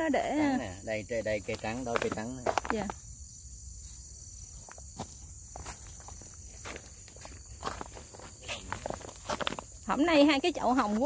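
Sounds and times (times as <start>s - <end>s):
high-pitched insect trill: 0.0s - 11.0s
footsteps: 1.4s - 3.0s, 4.6s - 11.0s.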